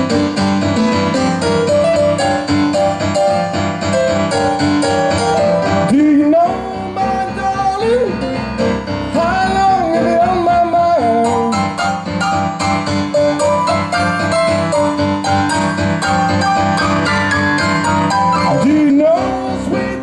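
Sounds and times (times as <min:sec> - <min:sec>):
blues piano: 0:00.0 - 0:20.0
man singing: 0:05.8 - 0:08.4, 0:09.1 - 0:11.8, 0:18.5 - 0:20.0.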